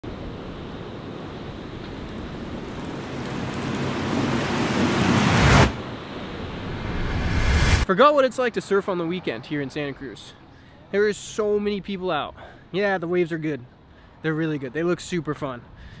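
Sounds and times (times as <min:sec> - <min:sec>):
ocean waves breaking: 0:00.0 - 0:07.9.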